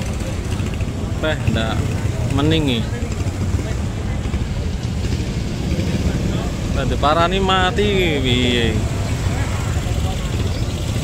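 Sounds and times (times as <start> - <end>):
crowd voices: 0.0 - 11.0
engines idling: 0.0 - 11.0.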